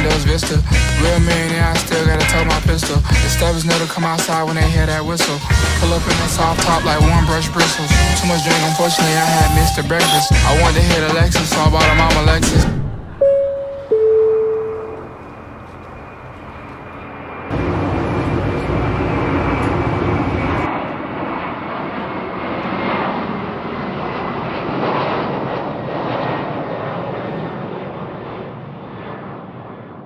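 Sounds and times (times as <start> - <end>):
jet engines rushing: 0.3 - 29.5
falling two-note tone: 7.9 - 10.7, 13.2 - 15.3.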